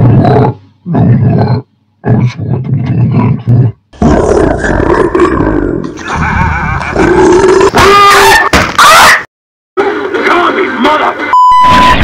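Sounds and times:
monster roaring and growling: 0.0 - 8.4.

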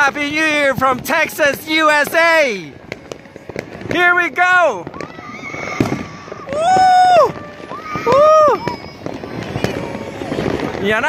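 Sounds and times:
fireworks popping and crackling: 0.0 - 11.0
person cheering woo: 6.4 - 8.9.

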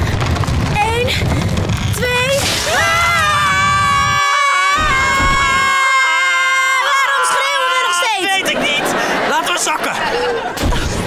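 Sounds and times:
people screaming: 2.6 - 8.4.

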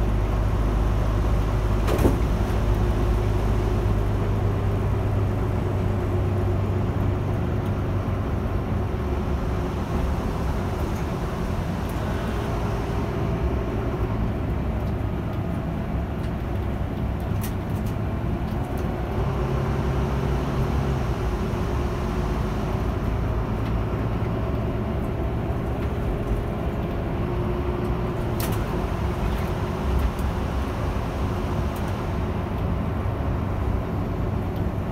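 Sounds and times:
bus engine hum: 0.0 - 34.9
tyre and road noise: 0.0 - 34.9.

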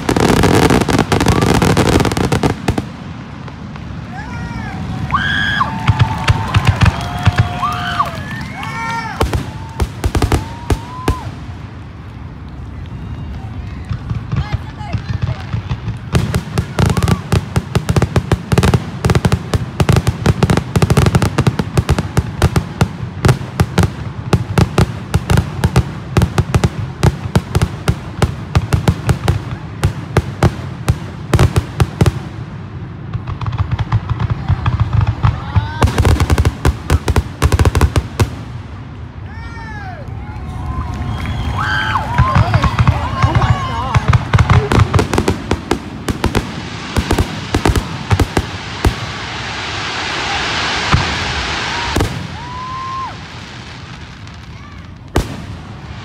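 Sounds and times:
fireworks rapid cracks: 0.0 - 39.5, 40.1 - 56.0.

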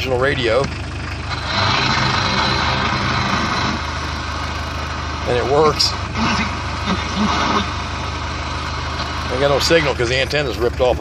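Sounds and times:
diesel engine idling: 0.0 - 11.0.

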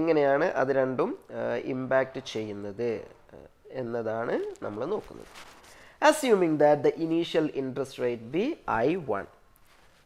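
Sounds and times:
man speaking: 0.0 - 9.4.

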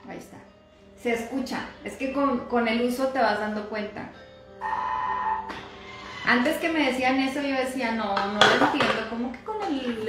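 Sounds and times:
steady electronic beep: 4.6 - 5.5.

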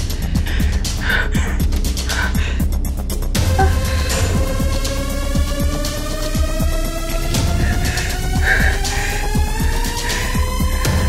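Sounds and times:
dramatic background music: 0.0 - 11.0
woman gasping in distress: 3.5 - 4.8, 7.5 - 10.8.

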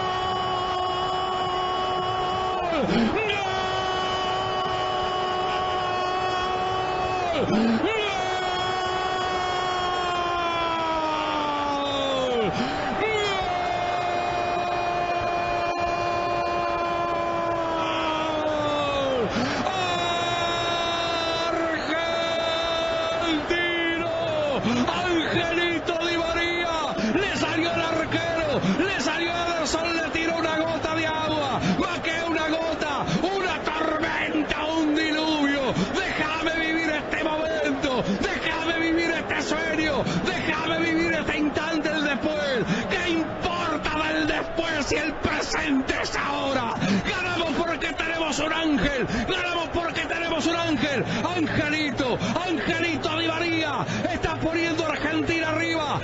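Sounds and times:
commentator's long goal shouts: 0.0 - 56.0
rapid excited shouting: 0.0 - 56.0.

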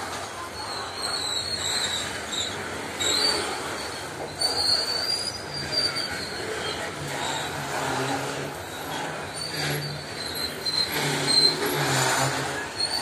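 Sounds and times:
freight train rolling rumble: 0.0 - 13.0
train wheels squealing: 0.0 - 13.0.

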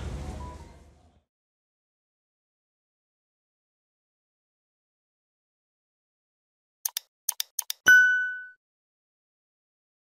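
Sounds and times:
quick digital clicks: 6.9 - 8.5
bright bell-like ding: 7.9 - 8.6.

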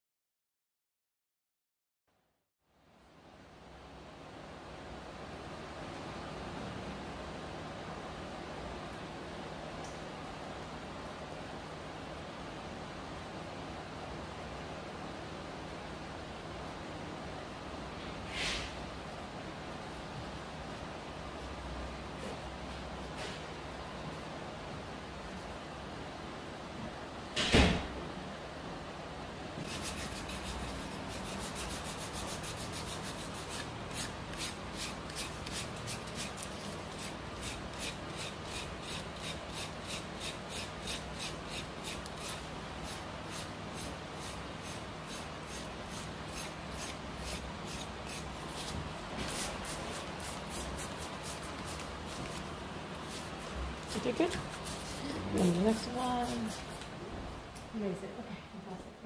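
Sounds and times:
callus skin being scraped: 29.7 - 52.5, 55.7 - 56.9.

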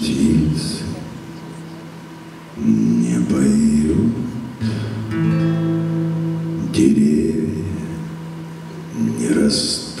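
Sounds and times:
acoustic guitar: 0.0 - 10.0.

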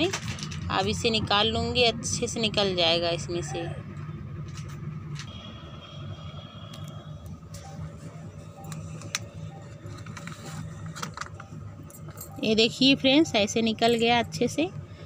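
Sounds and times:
low background rumble: 0.0 - 15.0.

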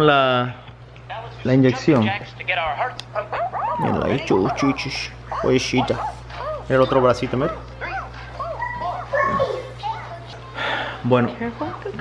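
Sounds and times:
toddler babbling: 7.8 - 10.4.

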